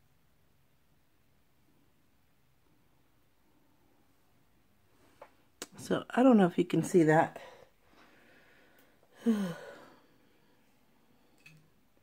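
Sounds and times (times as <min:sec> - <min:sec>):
woman sighing: 0:08.3 - 0:10.6.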